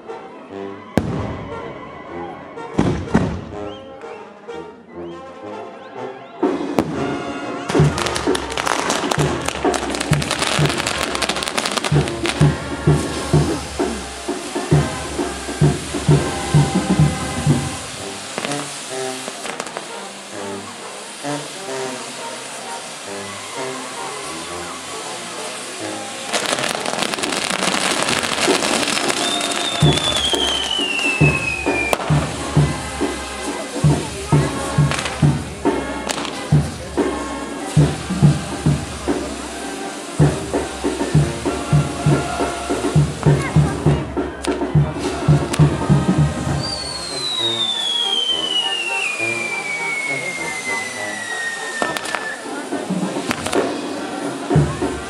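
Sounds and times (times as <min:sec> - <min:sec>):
fireworks hissing and crackling: 0:00.0 - 0:03.7, 0:06.4 - 0:55.0
falling firework whistle: 0:06.3 - 0:36.6, 0:46.4 - 0:54.7
music with low beat: 0:07.7 - 0:18.6, 0:26.4 - 0:49.1.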